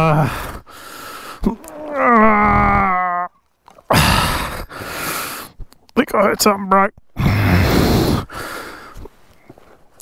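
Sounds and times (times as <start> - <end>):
heavy rough breaths: 0.0 - 1.7, 3.9 - 5.7, 7.2 - 10.0
man groaning in pain: 1.4 - 3.3, 3.9 - 4.6.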